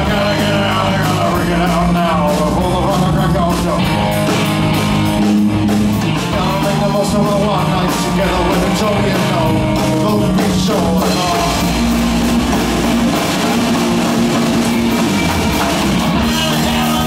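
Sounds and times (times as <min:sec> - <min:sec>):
bending lead guitar lines: 0:00.0 - 0:17.0
heavy bass line: 0:00.0 - 0:17.0
live rock band playing: 0:00.0 - 0:17.0.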